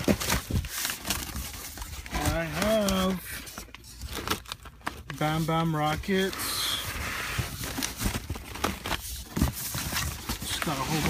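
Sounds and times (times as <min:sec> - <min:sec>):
plastic crinkling: 0:00.0 - 0:11.0.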